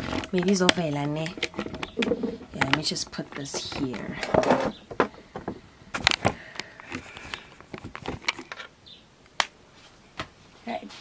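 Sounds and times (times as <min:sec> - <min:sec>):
faint rubbing and rustling: 0:00.0 - 0:05.6.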